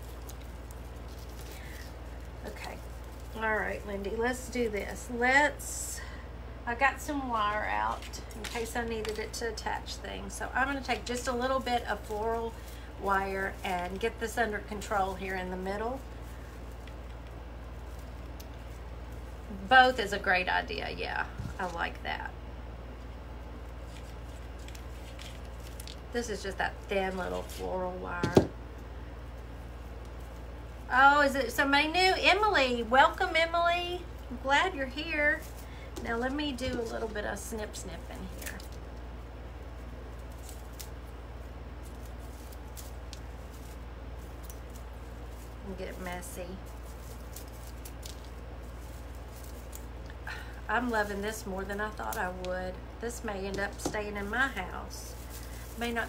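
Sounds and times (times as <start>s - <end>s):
low steady hum: 0.0s - 56.0s.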